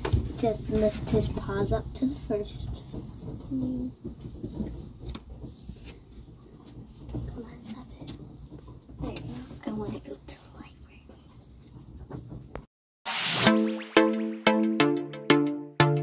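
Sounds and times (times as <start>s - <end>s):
whispered speech: 9.0s - 11.2s.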